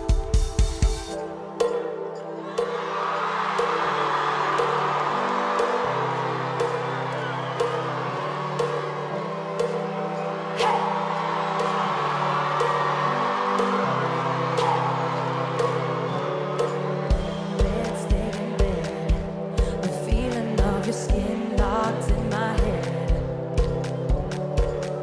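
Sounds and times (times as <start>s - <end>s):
crowd cheering: 1.2s - 19.4s
live band playing pop song: 14.7s - 25.0s.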